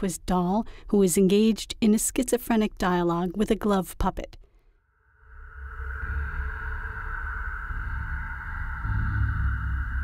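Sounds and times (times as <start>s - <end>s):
high held electronic tone: 5.1s - 10.0s
low pulsing rumble: 5.2s - 10.0s.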